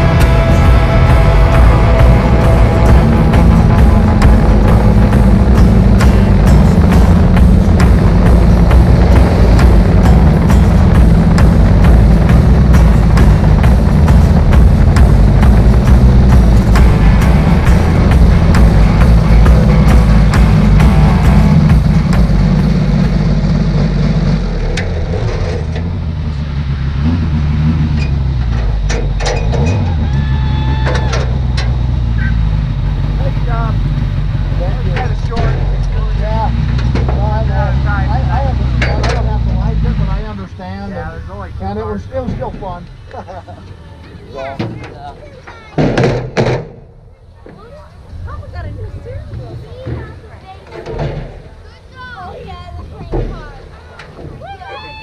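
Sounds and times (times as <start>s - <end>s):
race car engine running: 0.0s - 45.4s
voices: 28.0s - 55.0s.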